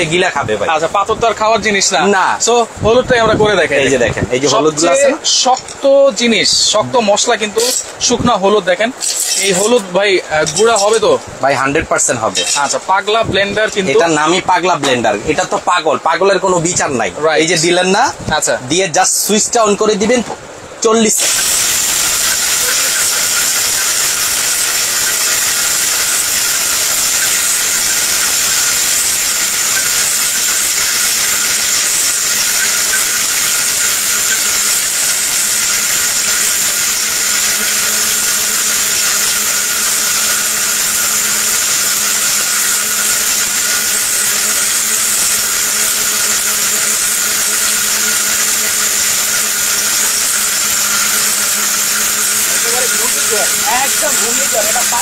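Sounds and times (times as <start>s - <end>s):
mixer grinder motor whining: 21.1s - 55.0s.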